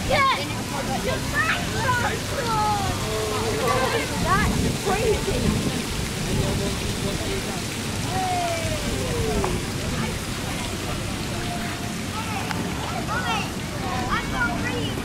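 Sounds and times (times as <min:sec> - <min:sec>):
faint voices: 0:00.0 - 0:15.0
fountain water splashing into pond: 0:00.0 - 0:15.0.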